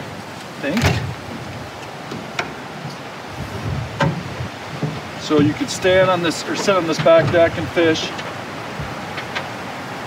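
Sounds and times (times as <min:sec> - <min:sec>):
steady rushing noise: 0:00.0 - 0:10.0.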